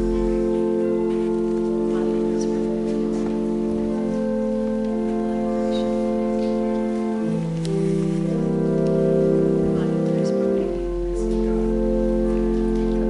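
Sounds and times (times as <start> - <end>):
organ playing sustained chords: 0.0 - 13.0.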